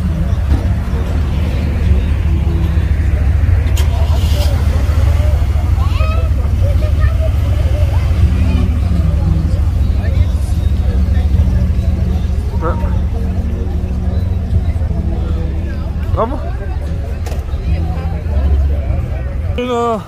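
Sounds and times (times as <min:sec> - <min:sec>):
car engine idling: 0:00.0 - 0:20.0
crowd chatter: 0:00.0 - 0:20.0.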